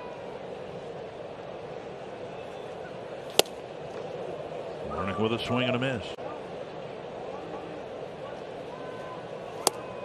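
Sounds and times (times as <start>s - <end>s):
crowd murmur: 0.0s - 10.0s
ball smacking into mitt: 3.3s - 3.6s, 9.6s - 9.8s.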